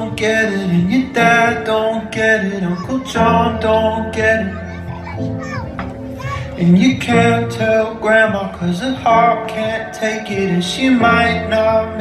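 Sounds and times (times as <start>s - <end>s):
backing music: 0.0s - 12.0s
children calling out: 2.2s - 6.7s.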